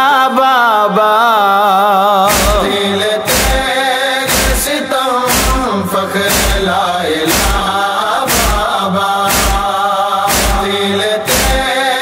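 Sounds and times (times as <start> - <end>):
men's chorus chanting a lament: 0.0 - 12.0
chest-beating rhythm: 2.3 - 12.0.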